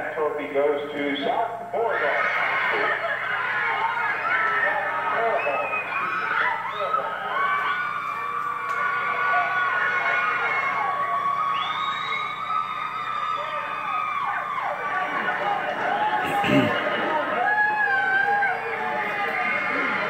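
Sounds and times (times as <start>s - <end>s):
teenagers screaming and squealing: 1.8s - 20.0s.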